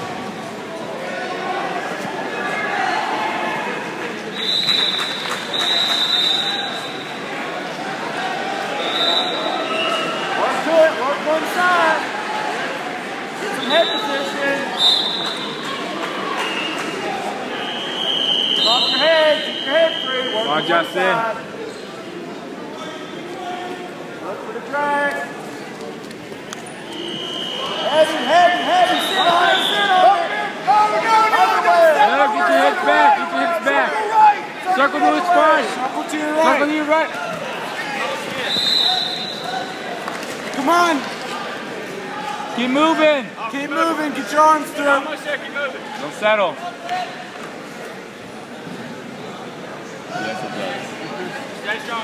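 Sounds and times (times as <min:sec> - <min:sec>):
crowd chatter: 0:00.0 - 0:52.0
many voices in echoing hall: 0:00.0 - 0:52.0
high-pitched whistle blast: 0:26.9 - 0:29.9.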